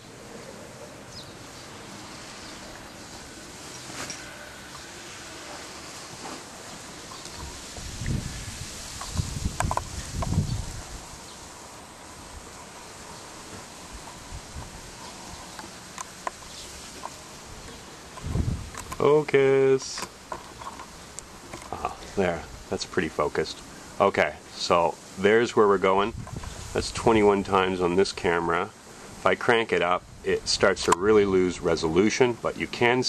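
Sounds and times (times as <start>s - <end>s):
outdoor background hiss: 0.0s - 33.0s
camera handling bumps and rustling: 19.9s - 21.8s.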